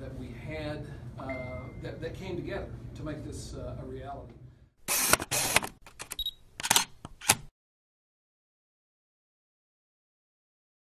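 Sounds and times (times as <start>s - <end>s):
high beep: 1.2s - 1.9s
camera shutter clicks: 4.9s - 7.5s.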